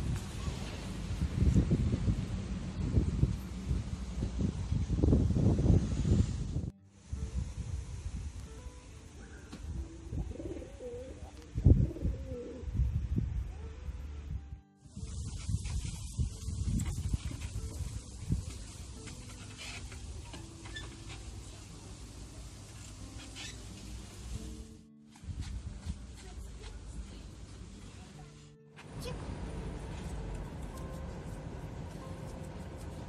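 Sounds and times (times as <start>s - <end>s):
outdoor hiss: 5.7s - 9.8s, 14.8s - 25.9s
background music: 6.8s - 15.3s, 16.0s - 33.0s
pigeon cooing: 10.1s - 12.7s.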